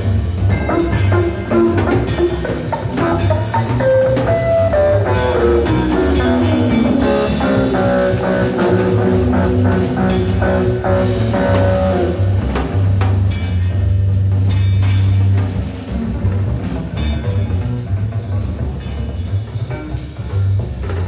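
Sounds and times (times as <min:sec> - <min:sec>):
electric guitar: 0:00.0 - 0:13.9
drums: 0:00.0 - 0:21.0
electric contrabass: 0:00.0 - 0:21.0.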